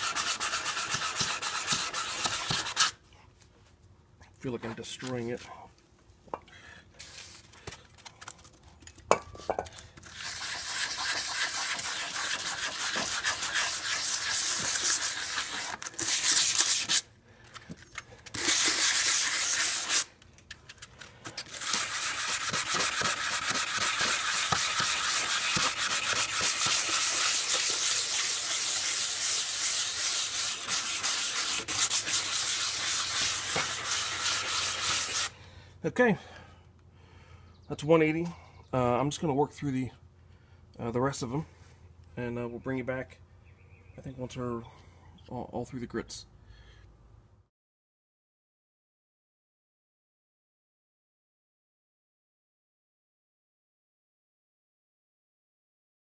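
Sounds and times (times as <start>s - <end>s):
sandpaper scrubbing on plastic: 0.0s - 3.0s, 10.0s - 17.1s, 18.3s - 20.1s, 21.5s - 35.3s.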